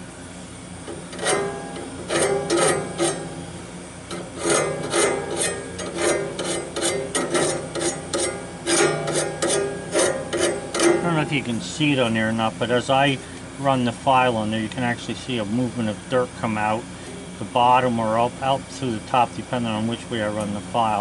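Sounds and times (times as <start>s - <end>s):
hand file rasping on blade: 1.2s - 3.3s, 4.1s - 11.2s.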